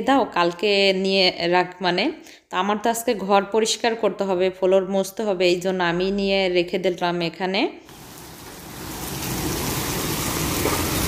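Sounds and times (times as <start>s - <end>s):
heavy rain on pavement and cars: 7.9s - 11.0s.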